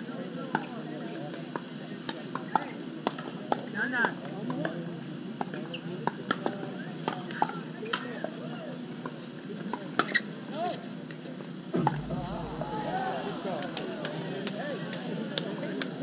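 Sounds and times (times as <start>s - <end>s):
murmur of voices: 0.0s - 16.0s.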